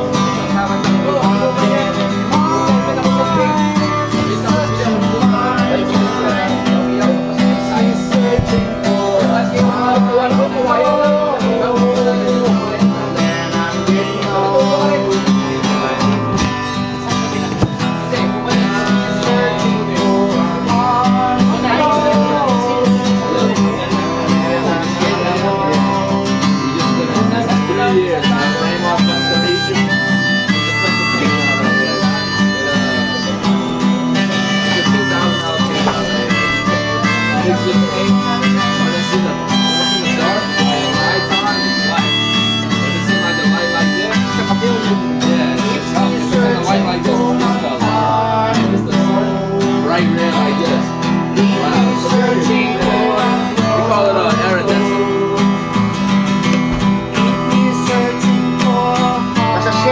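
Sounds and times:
acoustic guitar strumming: 0.0s - 59.9s
harmonica melody: 0.0s - 59.9s.

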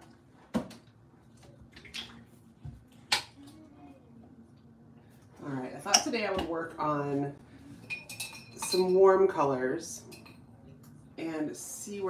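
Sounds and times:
woman speaking: 5.4s - 7.4s, 8.6s - 10.1s, 11.2s - 12.0s.

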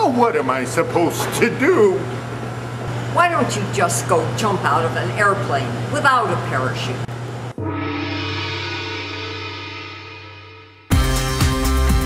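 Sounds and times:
gong-like tone: 7.6s - 11.8s
rhythmic music: 7.6s - 12.0s.

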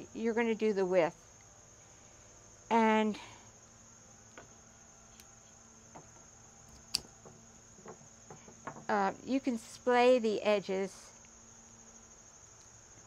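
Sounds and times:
crickets chirring: 0.0s - 13.0s
branch handling ticks: 4.3s - 8.9s.

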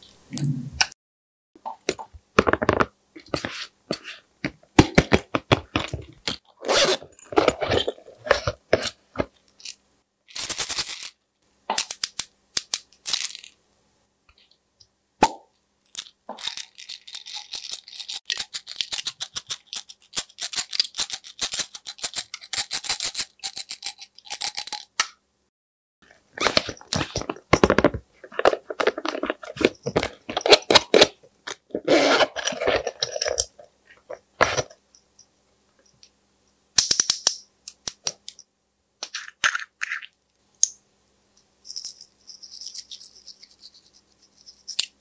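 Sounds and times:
beads rattling in glass vial: 15.9s - 24.9s, 41.6s - 45.0s.

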